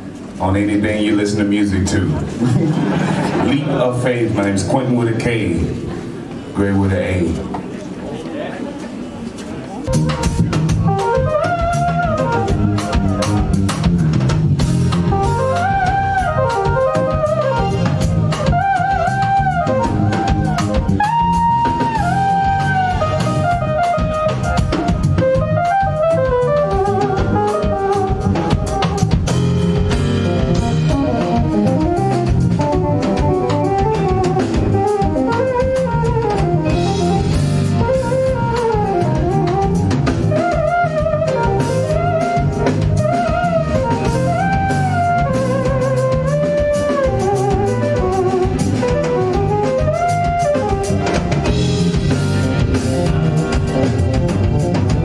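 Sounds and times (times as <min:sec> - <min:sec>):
drum kit: 0:09.8 - 0:55.0
electric bass: 0:09.9 - 0:55.0
keytar lead melody: 0:09.9 - 0:55.0.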